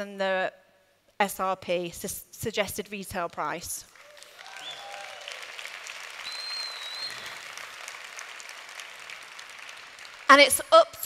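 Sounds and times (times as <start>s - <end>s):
audience clapping: 3.9s - 11.0s
short high whistle: 6.2s - 7.4s.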